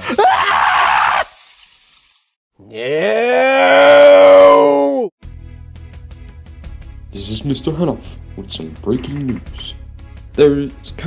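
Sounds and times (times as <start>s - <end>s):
shrill screeching of creatures: 0.0s - 1.4s, 2.8s - 5.0s
hiss: 0.0s - 2.4s.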